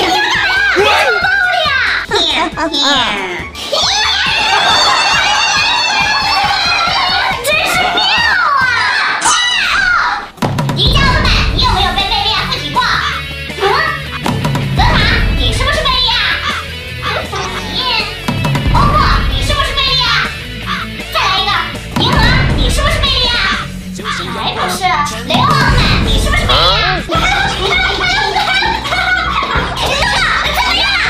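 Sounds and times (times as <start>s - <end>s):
background music with steady beat: 0.0s - 31.0s
high-pitched child-like voice speaking: 10.8s - 14.1s.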